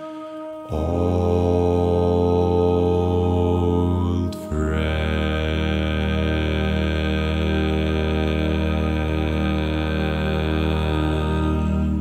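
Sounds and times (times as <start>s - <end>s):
a cappella vocal harmony chord: 0.0s - 12.0s.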